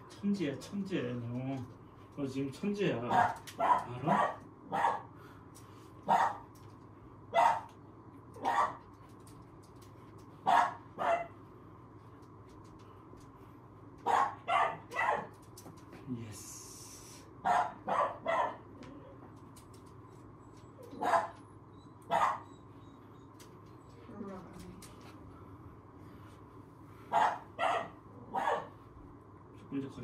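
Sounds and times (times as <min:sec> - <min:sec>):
puppy barking: 0:03.1 - 0:05.1, 0:06.1 - 0:06.5, 0:07.3 - 0:07.7, 0:08.4 - 0:08.8, 0:10.4 - 0:11.4, 0:14.0 - 0:15.4, 0:17.4 - 0:18.7, 0:20.8 - 0:21.5, 0:22.1 - 0:22.6, 0:27.1 - 0:28.8.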